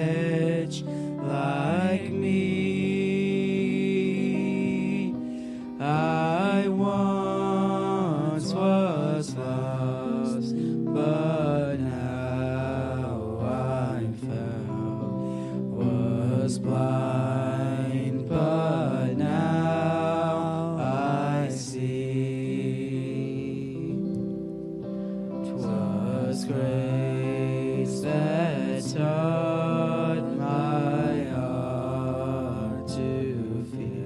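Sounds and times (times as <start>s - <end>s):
men singing into microphones: 0.0s - 24.2s, 25.5s - 34.0s
electric guitar: 0.0s - 34.0s.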